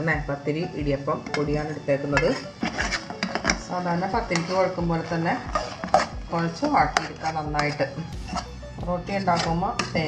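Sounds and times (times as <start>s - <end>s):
music with steady beat: 0.1s - 10.0s
knife scraping metal bowl: 1.2s - 10.0s.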